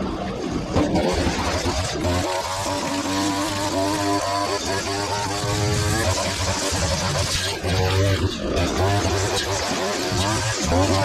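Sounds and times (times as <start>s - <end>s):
line trimmer running: 0.8s - 11.0s.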